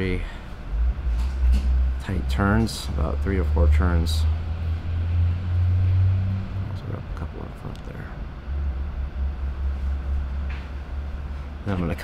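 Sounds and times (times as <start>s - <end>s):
loud low rumble: 0.0s - 11.7s
man speaking: 2.0s - 4.4s, 6.6s - 8.2s, 11.6s - 12.0s.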